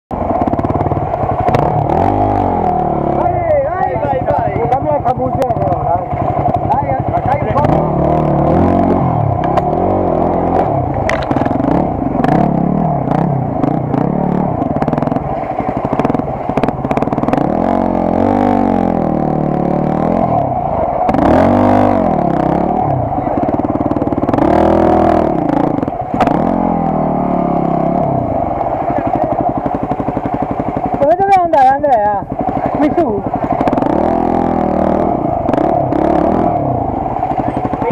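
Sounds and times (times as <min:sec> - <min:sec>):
dirt bike engines revving: 0:00.1 - 0:37.9
voices: 0:01.6 - 0:11.4, 0:19.9 - 0:37.9.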